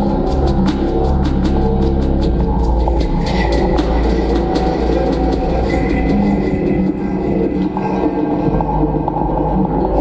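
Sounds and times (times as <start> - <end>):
droning noise music: 0.0 - 10.0.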